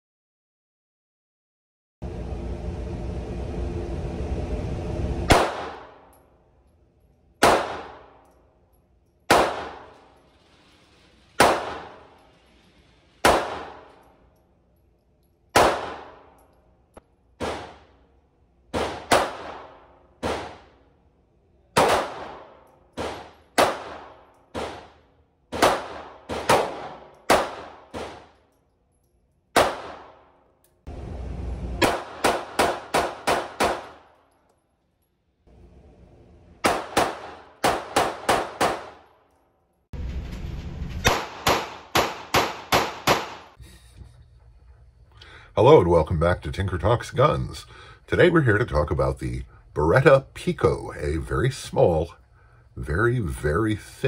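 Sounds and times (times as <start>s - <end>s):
pistol shots with ringing echo: 5.3s - 6.2s, 7.4s - 8.3s, 9.3s - 10.2s, 11.4s - 12.2s, 13.2s - 14.0s, 15.5s - 16.4s, 17.4s - 18.0s, 18.7s - 20.8s, 21.8s - 28.4s, 29.5s - 30.5s, 31.8s - 34.2s, 36.6s - 39.1s, 41.0s - 43.6s.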